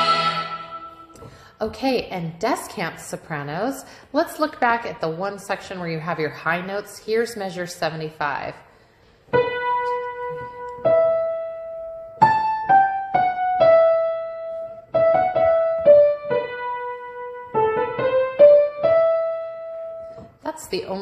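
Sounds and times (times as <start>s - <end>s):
piano melody: 0.0s - 1.5s, 9.3s - 20.4s.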